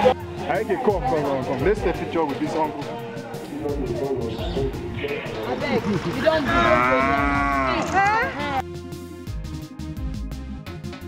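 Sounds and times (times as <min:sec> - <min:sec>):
background music: 0:00.0 - 0:11.0
lion moaning call: 0:06.5 - 0:08.1.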